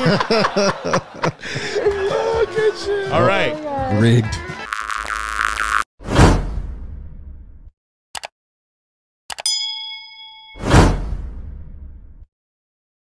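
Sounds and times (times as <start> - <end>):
bell-like ding: 9.5 - 11.0.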